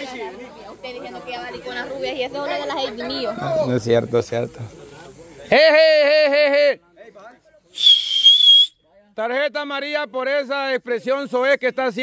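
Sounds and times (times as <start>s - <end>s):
referee's whistle blast: 7.8s - 8.8s.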